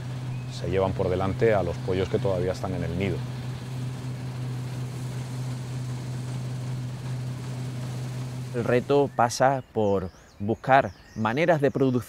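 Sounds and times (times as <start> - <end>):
low mechanical drone: 0.0 - 9.4.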